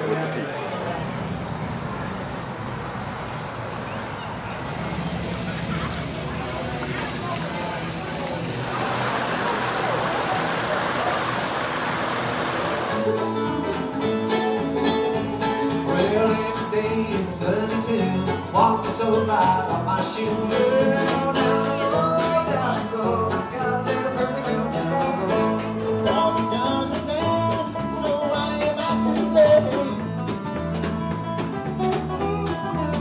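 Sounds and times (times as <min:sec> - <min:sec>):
water splashing down fountain: 0:04.5 - 0:13.1
bluegrass banjo and guitar music: 0:04.6 - 0:33.0.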